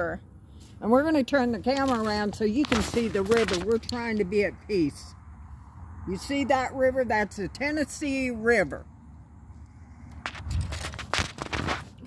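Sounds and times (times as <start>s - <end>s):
phone handling clicks and rustles: 1.6s - 4.2s.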